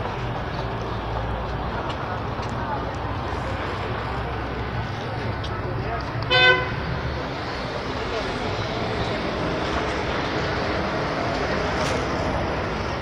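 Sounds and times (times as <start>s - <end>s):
crowd chatter: 0.0s - 13.0s
traffic: 0.0s - 13.0s
vehicle horn toot: 6.3s - 6.8s.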